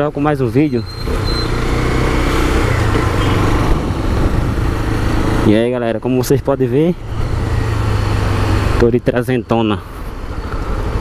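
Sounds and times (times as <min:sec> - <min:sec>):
wind and road noise: 0:00.0 - 0:11.0.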